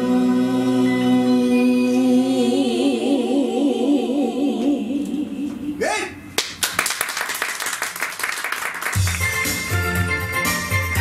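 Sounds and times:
audience applause: 0:06.4 - 0:09.4.

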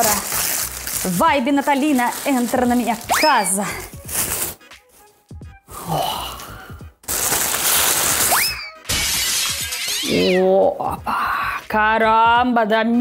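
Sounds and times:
plastic wrapping crinkling: 0:00.0 - 0:04.6, 0:07.0 - 0:09.4
music playing: 0:00.0 - 0:12.6.

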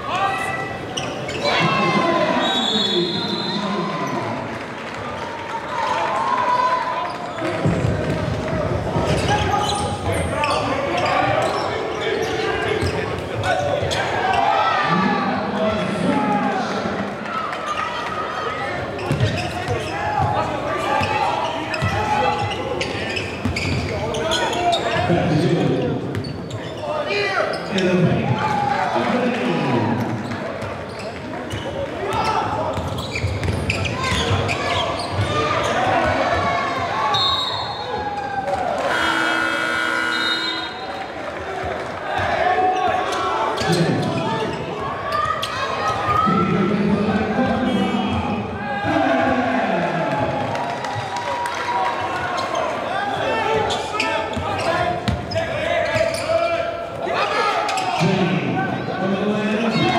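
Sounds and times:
echoing voices in gym: 0:00.0 - 0:59.9.

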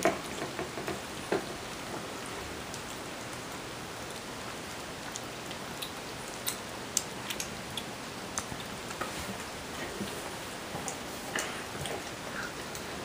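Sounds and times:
steady hiss: 0:00.0 - 0:13.0
kittens chewing clicks: 0:05.0 - 0:09.2, 0:09.8 - 0:13.0.

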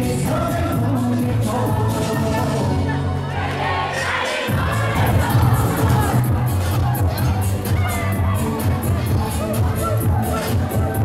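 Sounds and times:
crowd singing and shouting: 0:00.0 - 0:11.0.

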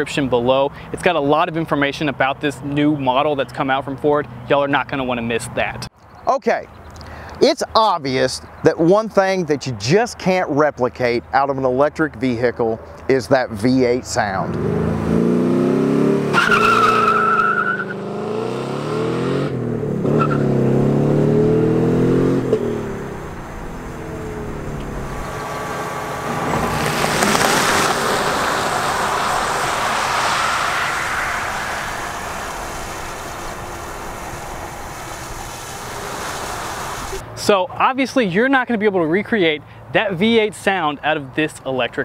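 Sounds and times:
tyre and road noise: 0:12.0 - 0:38.6
car engine revving: 0:14.4 - 0:37.2
tyre squeal: 0:16.3 - 0:18.0, 0:20.1 - 0:20.6
electric motor whine: 0:22.2 - 0:37.2.

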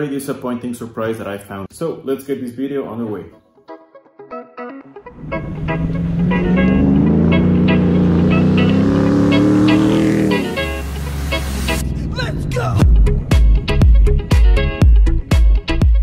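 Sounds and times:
truck engine revving: 0:05.1 - 0:13.4
background music with a beat: 0:12.8 - 0:16.0.

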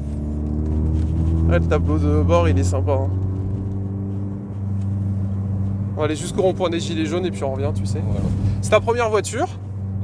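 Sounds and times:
car engine cruising from inside cabin: 0:00.0 - 0:10.0
exhaust resonating: 0:00.0 - 0:10.0.

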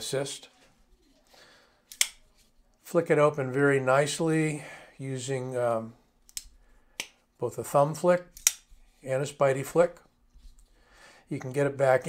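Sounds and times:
folding knife snapping open: 0:01.9 - 0:02.2, 0:08.4 - 0:08.7.

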